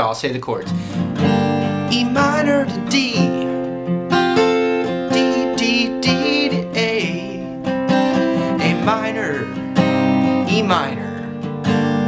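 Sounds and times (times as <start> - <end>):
acoustic guitar strumming: 0.6 - 12.0.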